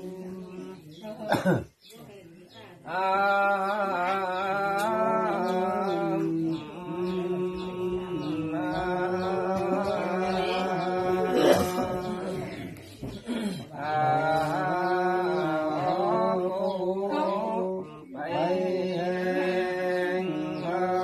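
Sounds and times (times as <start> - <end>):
voices chanting: 0.0 - 21.0.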